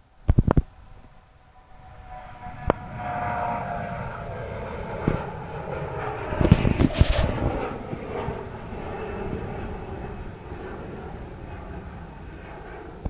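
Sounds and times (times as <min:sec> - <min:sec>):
jet engines rumbling: 0:00.0 - 0:13.0.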